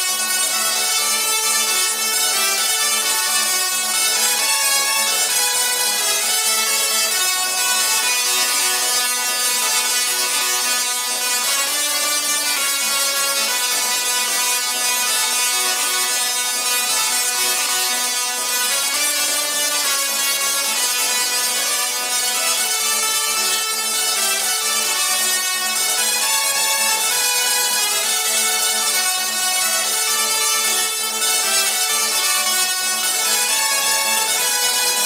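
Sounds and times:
tesla coils playing a tune: 0.0s - 35.0s.

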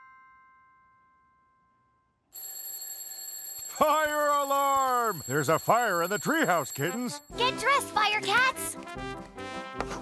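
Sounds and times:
alarm clock bell ringing: 2.4s - 7.8s.

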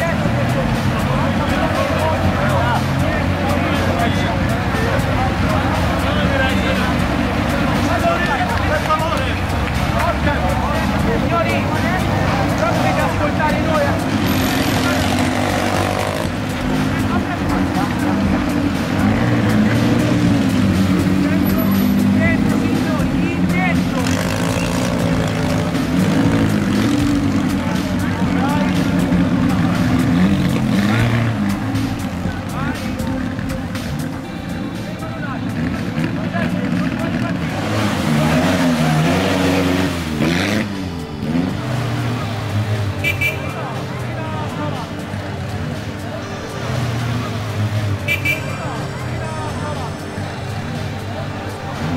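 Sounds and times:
car engines idling and pulling away: 0.0s - 51.9s
people talking: 0.0s - 51.9s.

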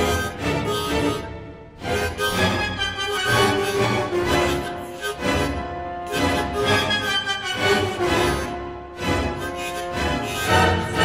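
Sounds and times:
harmonica chords: 0.0s - 11.0s.

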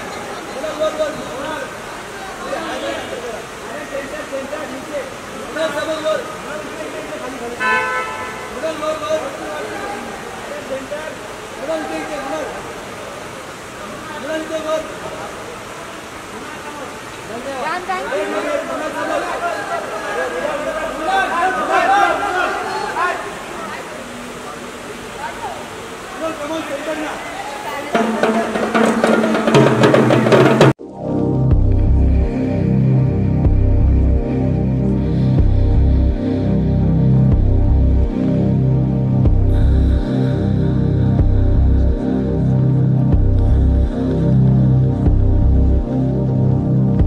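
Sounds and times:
voices calling out: 0.0s - 30.8s
tom drums and cymbal hits: 28.0s - 30.8s
music with a steady beat: 29.5s - 47.0s.

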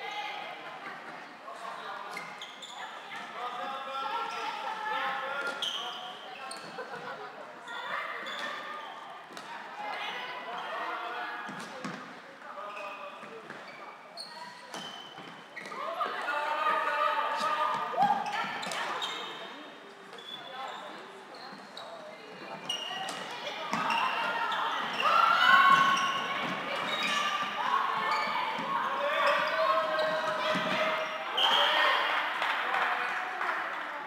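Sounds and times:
players calling and shouting: 12.6s - 34.0s
footfalls on court floor: 22.6s - 31.1s.

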